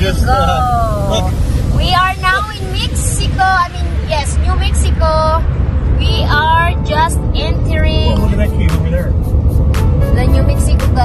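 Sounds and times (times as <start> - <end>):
people talking: 0.0 - 5.4, 6.0 - 9.1, 10.2 - 11.0
car cabin road and engine rumble: 0.0 - 11.0.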